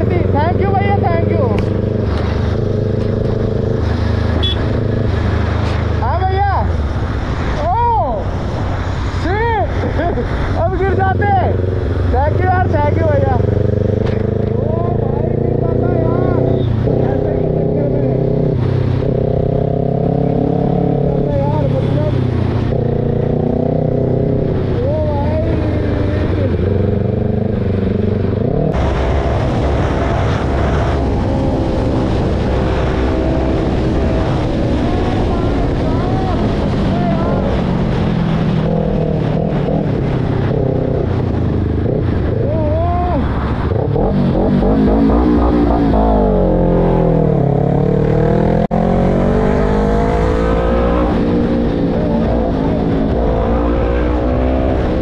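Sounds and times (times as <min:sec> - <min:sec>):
wind rush on microphone: 0:18.1 - 0:47.5.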